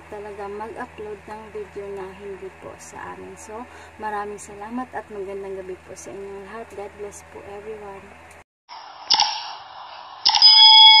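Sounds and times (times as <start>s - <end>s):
quick clicks: 10.2s - 10.6s.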